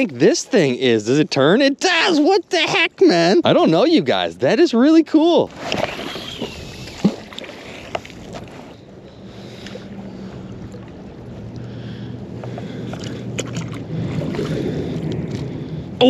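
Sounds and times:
low steady hum: 0.0 - 16.0
wind and water noise: 0.0 - 16.0
magnet splashing into water: 5.5 - 8.1.

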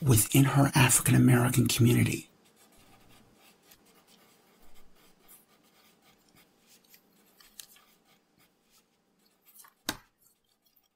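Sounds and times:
soft clicks and rustles: 6.2 - 8.0.

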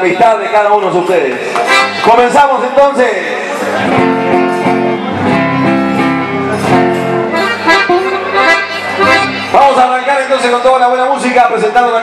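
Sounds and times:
accordions playing held chords: 1.5 - 2.4, 3.6 - 10.1.

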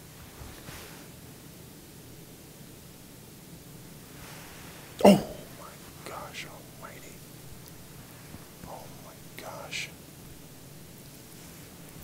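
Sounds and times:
man whispering: 5.0 - 7.3, 8.6 - 10.0.

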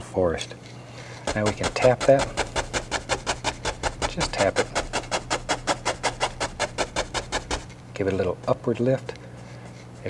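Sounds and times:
brush tapping on wet canvas: 1.3 - 7.7.

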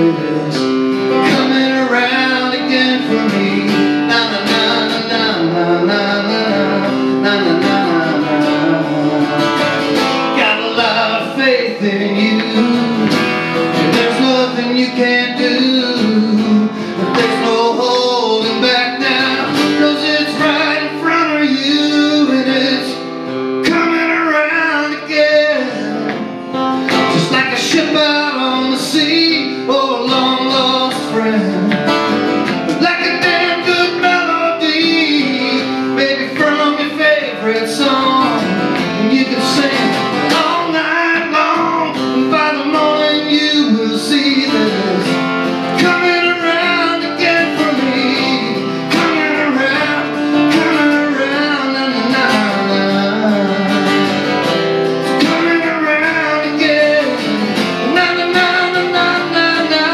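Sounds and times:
acoustic guitar strumming: 0.0 - 59.9
man singing: 0.0 - 59.9.

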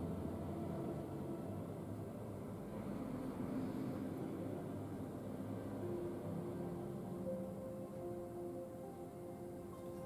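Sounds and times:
low hum and hiss of room noise: 0.0 - 10.0.

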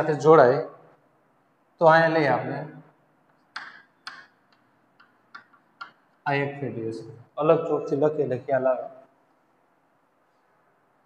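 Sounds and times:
chalk tapping and scratching on board: 3.6 - 6.2.

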